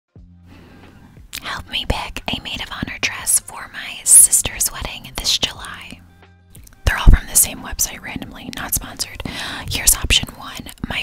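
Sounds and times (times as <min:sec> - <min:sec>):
woman whispering: 0:01.4 - 0:06.0, 0:06.8 - 0:11.0.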